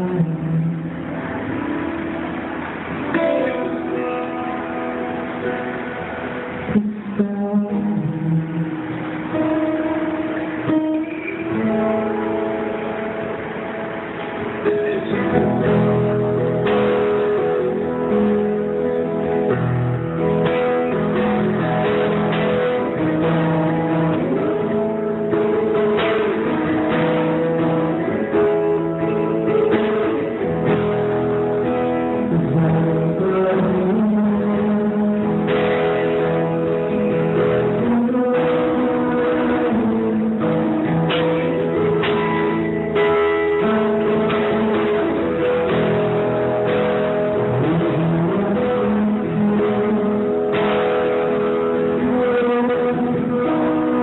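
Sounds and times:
man singing: 0.0s - 1.1s, 6.6s - 10.1s, 20.6s - 30.7s, 31.5s - 42.0s, 43.6s - 54.0s
acoustic guitar playing: 0.0s - 54.0s.

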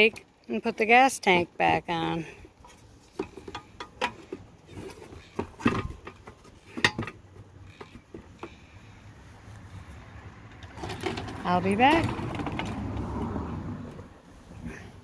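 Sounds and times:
plastic and metal clicks and knocks: 3.1s - 8.6s.

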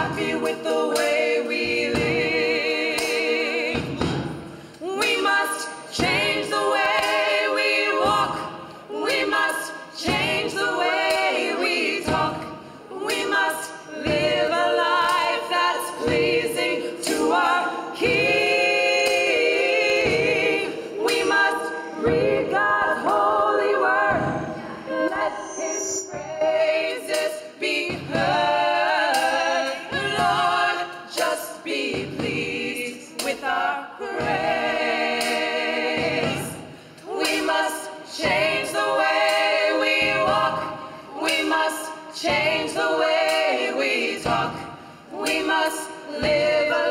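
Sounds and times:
choir singing a cappella: 0.0s - 46.9s.

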